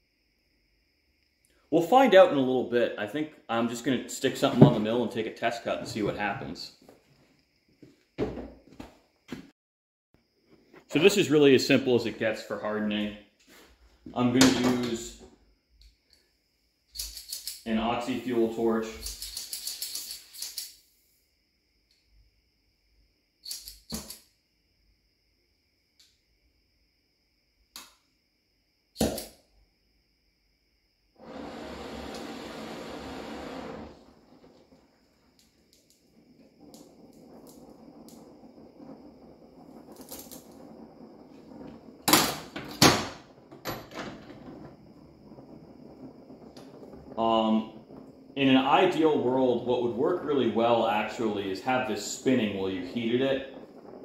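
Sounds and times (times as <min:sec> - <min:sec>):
gas hissing: 0:31.2 - 0:43.4, 0:44.0 - 0:53.9
torch flame rushing: 0:31.2 - 0:54.0.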